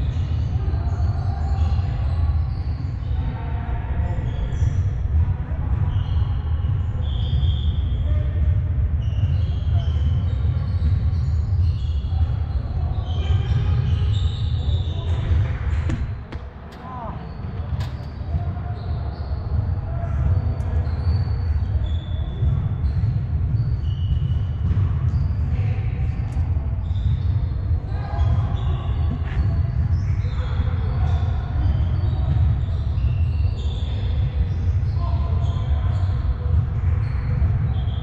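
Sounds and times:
ball being kicked: 15.7 - 16.8.

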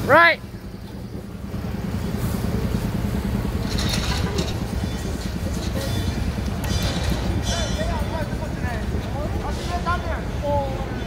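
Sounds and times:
electric trolleybus driving off: 0.0 - 11.0
street noise: 0.0 - 11.0.

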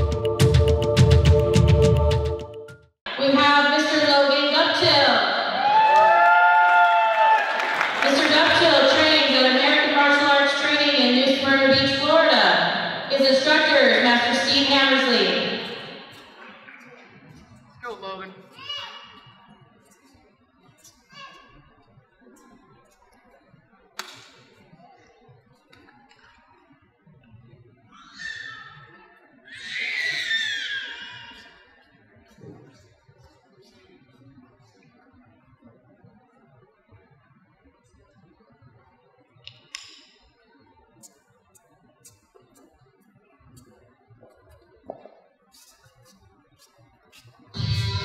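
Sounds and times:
crowd cheering: 5.4 - 9.6
people clapping: 5.6 - 9.3.

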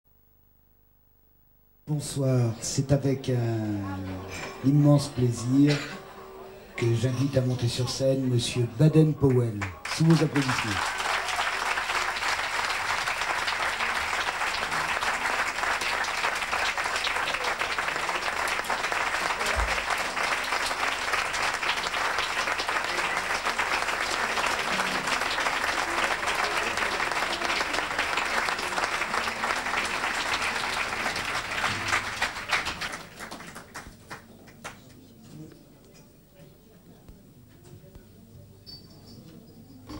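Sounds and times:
audience applauding: 9.0 - 35.0.

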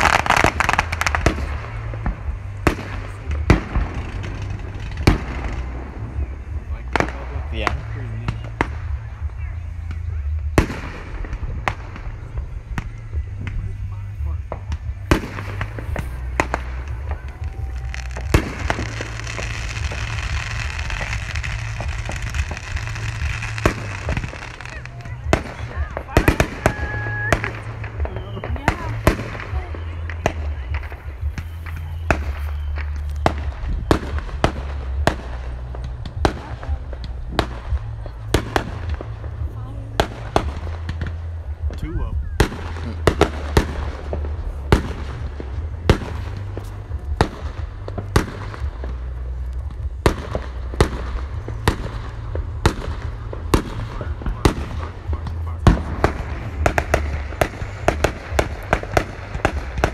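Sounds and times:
firework hiss: 0.0 - 59.9
low rumble: 0.0 - 59.9.

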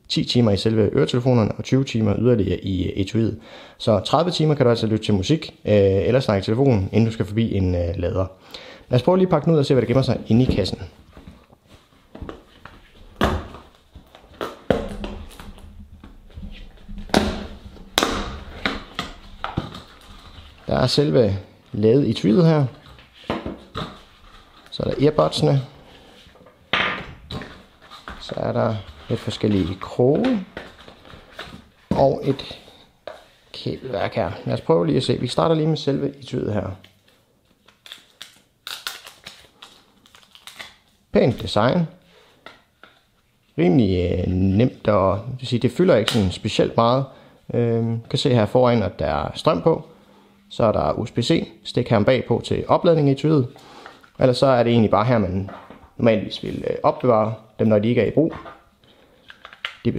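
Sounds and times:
cardboard and plastic packaging rustling: 9.8 - 21.0, 22.3 - 32.7
plastic film crinkling: 37.0 - 41.0.

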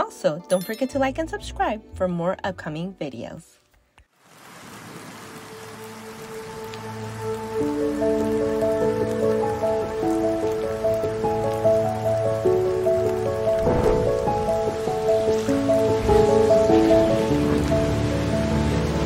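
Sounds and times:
even hiss like rain: 4.1 - 19.0
soft ambient music: 5.4 - 19.0.

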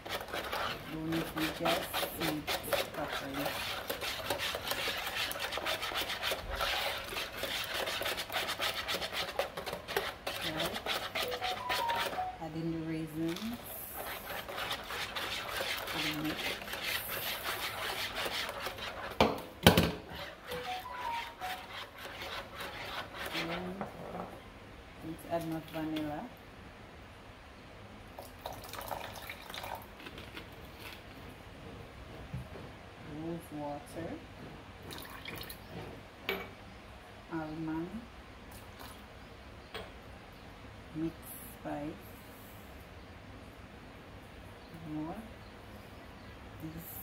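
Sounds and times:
whisk beating in plastic bowl: 0.0 - 12.4, 13.0 - 23.8.

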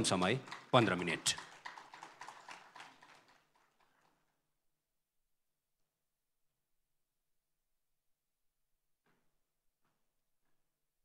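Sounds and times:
faint hand claps: 0.0 - 4.3.

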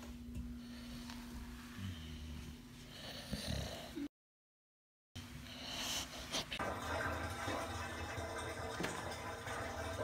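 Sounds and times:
dog snoring breathing: 1.7 - 4.1.

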